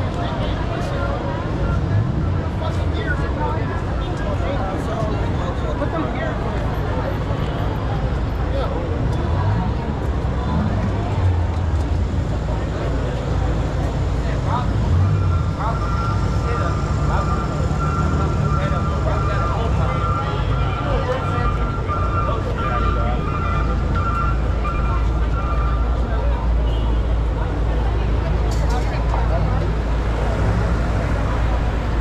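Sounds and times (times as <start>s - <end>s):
crowd chatter: 0.0s - 32.0s
traffic rumble: 0.0s - 32.0s.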